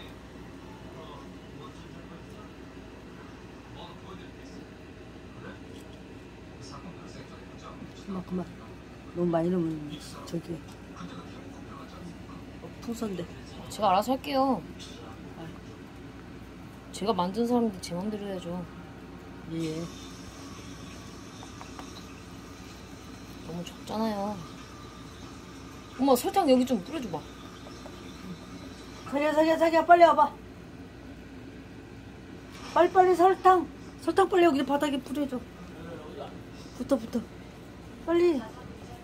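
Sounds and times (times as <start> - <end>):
stick stirring foaming sugar: 19.2 - 29.7.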